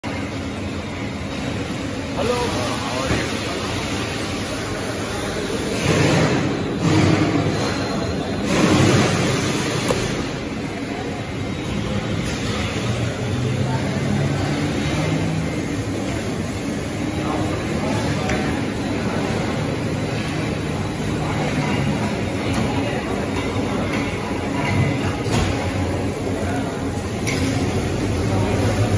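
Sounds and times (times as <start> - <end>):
machinery hum and hiss: 0.0 - 28.9.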